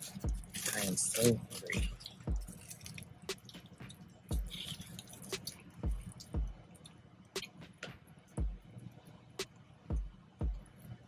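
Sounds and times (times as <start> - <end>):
wet chewing and mouth smacking: 0.0 - 7.6
soft low thumps: 0.2 - 0.5, 1.8 - 2.6, 3.8 - 4.6, 5.8 - 6.6, 8.4 - 8.7, 9.9 - 10.7.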